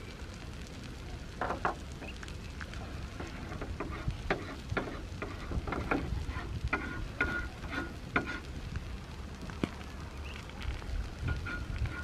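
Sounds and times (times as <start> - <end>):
meat sizzling on charcoal grill: 0.0 - 12.0.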